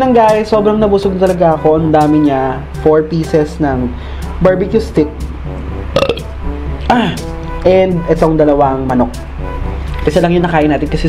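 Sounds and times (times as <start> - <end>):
light background music: 0.0 - 11.0
man burping: 5.9 - 7.3.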